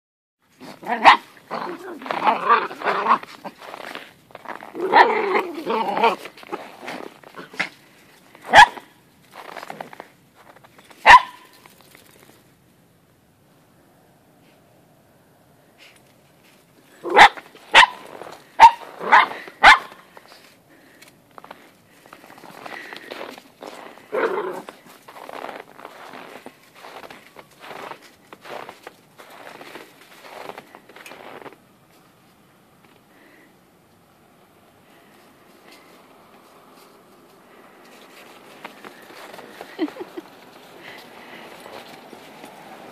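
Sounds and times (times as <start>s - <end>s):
paws scuffling in snow: 0.5s - 12.4s, 15.8s - 32.1s, 34.9s - 42.9s
dog growling: 0.6s - 7.7s, 24.1s - 24.8s
dog barking: 0.9s - 1.3s, 8.5s - 8.9s, 11.0s - 11.5s, 17.0s - 18.0s, 18.6s - 19.9s.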